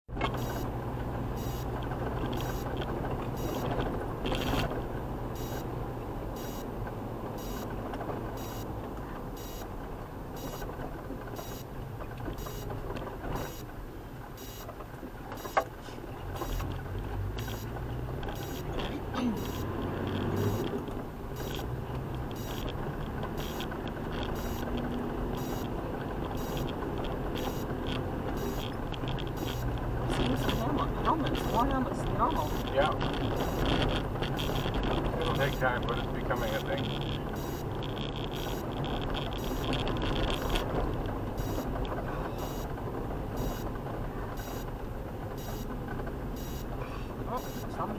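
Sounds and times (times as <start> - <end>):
engine drone: 0.1 - 47.9
road rumble: 0.1 - 47.9
high beep: 0.3 - 0.7, 1.4 - 1.7, 2.4 - 2.7, 3.3 - 3.7, 5.4 - 5.7, 6.4 - 6.7, 7.4 - 7.7, 8.4 - 8.7, 9.4 - 9.7, 10.4 - 10.7, 11.4 - 11.7, 12.4 - 12.7, 13.4 - 13.7, 14.4 - 14.7, 17.4 - 17.7, 18.3 - 20.7, 21.4 - 21.7, 22.3 - 22.7, 23.4 - 23.7, 24.3 - 24.7, 25.4 - 26.7, 27.4 - 27.7, 28.4 - 28.8, 29.4 - 29.7, 30.3 - 31.7, 32.3 - 32.8, 33.4 - 33.7, 35.3 - 36.7, 37.3 - 37.7, 38.4 - 38.7, 39.4 - 39.8, 41.4 - 41.8, 42.4 - 42.7, 43.4 - 43.7, 44.4 - 44.7, 45.4 - 45.7, 46.4 - 46.7, 47.3 - 47.8.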